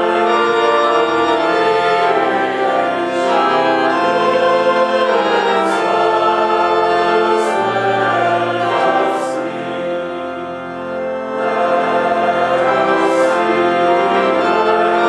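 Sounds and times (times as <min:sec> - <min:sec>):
church organ chords: 0:00.0 - 0:15.0
congregation singing a hymn: 0:00.0 - 0:15.0.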